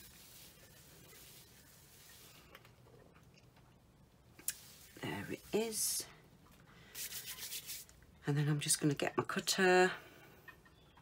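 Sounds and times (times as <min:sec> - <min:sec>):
wipe rubbing over a mat: 0:00.0 - 0:02.4, 0:04.6 - 0:06.0.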